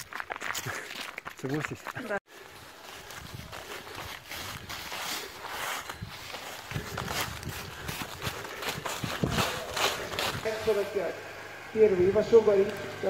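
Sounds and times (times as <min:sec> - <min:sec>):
footsteps running through dry leaves: 0:00.0 - 0:11.0.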